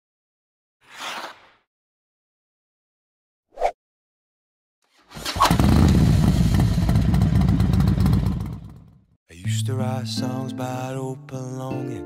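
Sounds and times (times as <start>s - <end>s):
motorcycle engine starting and running: 5.1s - 9.2s.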